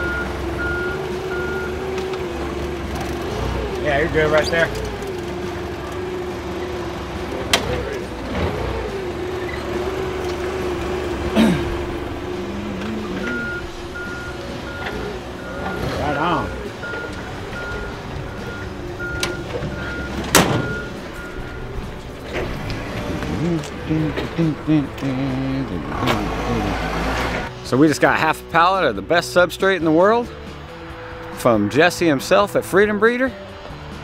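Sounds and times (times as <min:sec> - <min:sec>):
reversing alarm beeping: 0:00.0 - 0:01.8, 0:13.1 - 0:21.8
forklift humming: 0:00.0 - 0:27.7
sharp metal clunks: 0:19.2 - 0:21.0.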